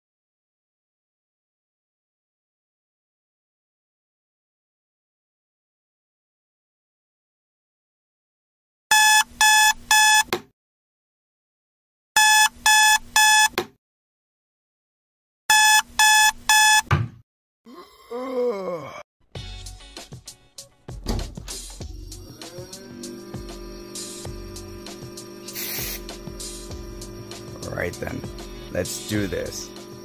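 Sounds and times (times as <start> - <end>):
alarm clock beeping: 8.9 - 10.3, 12.2 - 13.5, 15.5 - 16.9.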